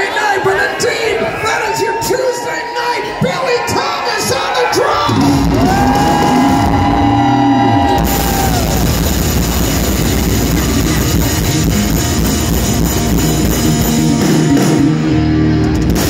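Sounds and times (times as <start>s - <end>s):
rock band playing: 4.9s - 16.0s.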